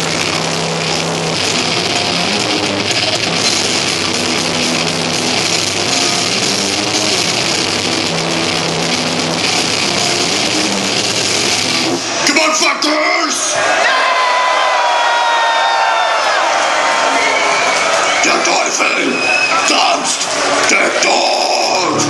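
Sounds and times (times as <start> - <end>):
live heavy metal band playing: 0.0 - 12.3, 20.2 - 22.0
crowd cheering and yelling: 0.0 - 22.0.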